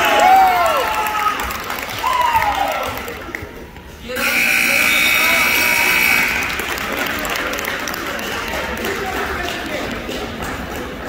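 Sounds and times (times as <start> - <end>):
high scoreboard buzzer: 4.2 - 6.9.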